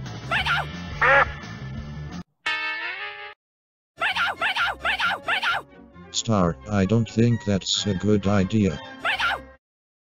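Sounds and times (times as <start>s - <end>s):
background music: 0.0s - 3.3s, 4.0s - 9.6s.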